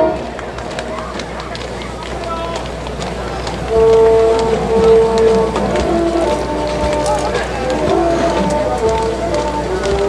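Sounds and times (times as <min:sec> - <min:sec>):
brass band playing a march: 0:00.0 - 0:10.0.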